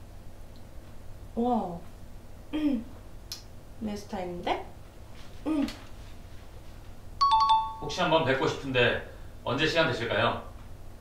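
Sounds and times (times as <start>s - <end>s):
phone notification beeps: 7.2s - 7.9s.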